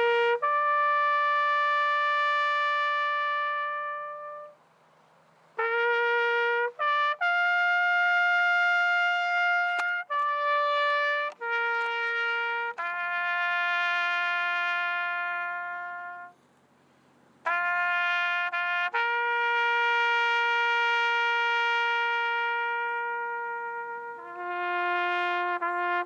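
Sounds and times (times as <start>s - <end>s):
brass instrument long note: 0.0s - 4.6s, 5.6s - 16.4s, 17.5s - 26.0s.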